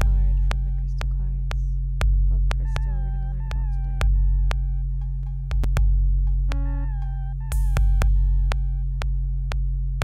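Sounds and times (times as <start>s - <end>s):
deep bass drone: 0.0s - 10.0s.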